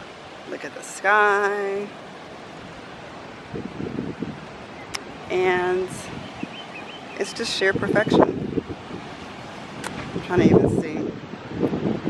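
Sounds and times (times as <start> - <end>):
distant surf: 0.0 - 12.0
wind: 0.0 - 12.0
wind buffeting microphone: 1.6 - 12.0.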